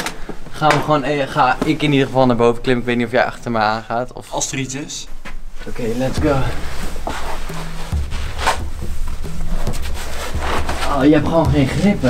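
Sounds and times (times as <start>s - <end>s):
background music with bass line: 5.2s - 12.0s.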